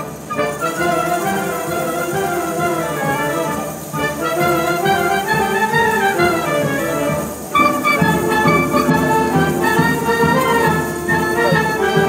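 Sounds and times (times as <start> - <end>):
clarinet melody: 0.0 - 12.0
drums and percussion: 0.0 - 12.0.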